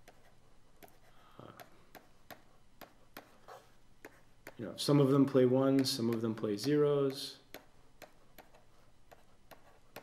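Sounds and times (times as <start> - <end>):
stylus tapping on tablet screen: 0.0 - 4.7, 5.6 - 10.0.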